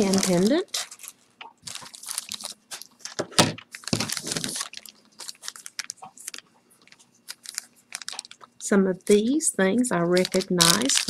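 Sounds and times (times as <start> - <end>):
plastic bag crinkling: 0.0 - 9.3, 9.9 - 11.0.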